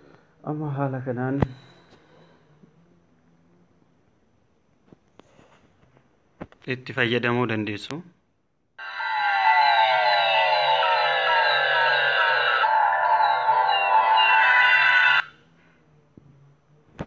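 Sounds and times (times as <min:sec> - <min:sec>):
synthesized intro music: 0:08.8 - 0:15.3.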